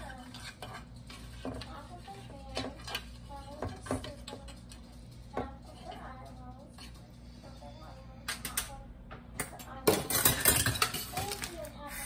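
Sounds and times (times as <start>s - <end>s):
dishes and utensils clattering: 0.0s - 7.1s, 8.2s - 11.7s.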